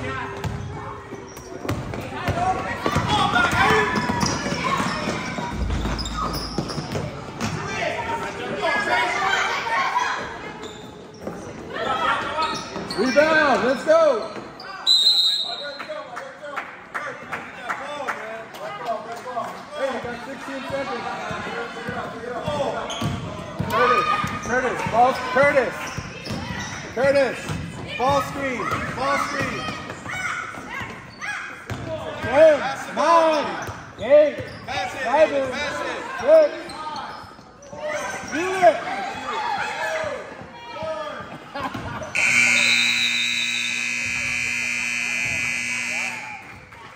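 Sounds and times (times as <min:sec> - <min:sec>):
overlapping voices in a gym: 0:00.0 - 0:10.6, 0:15.5 - 0:46.9
scoreboard buzzer: 0:42.2 - 0:46.4.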